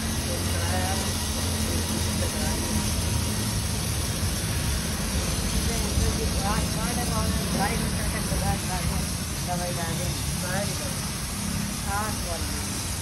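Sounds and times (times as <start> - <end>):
pressure washer spraying water: 0.0 - 13.0.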